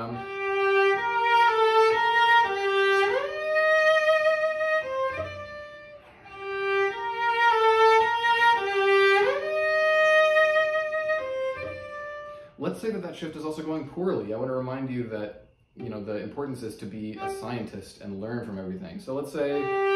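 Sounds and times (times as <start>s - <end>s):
bowed cello: 0.0s - 19.9s.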